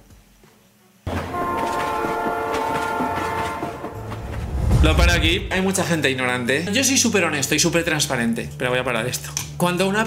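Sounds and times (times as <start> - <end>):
train horn chord: 1.1 - 5.5
passing train noise: 1.1 - 6.2.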